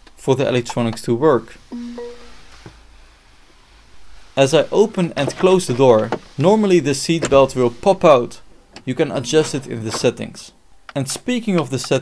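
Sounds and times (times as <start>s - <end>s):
electronic chime tone: 1.7s - 2.4s.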